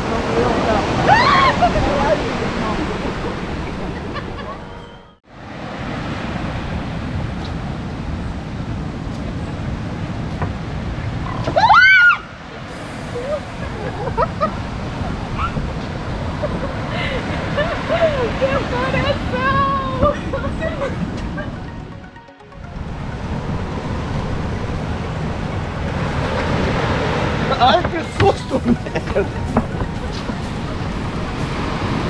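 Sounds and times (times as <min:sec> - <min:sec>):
surf: 0:00.0 - 0:04.6, 0:22.6 - 0:32.0
wind noise: 0:00.0 - 0:21.8, 0:22.6 - 0:32.0
woman screaming: 0:01.0 - 0:01.8, 0:11.6 - 0:12.3
laughing and excited talk: 0:16.4 - 0:21.6, 0:27.5 - 0:29.4.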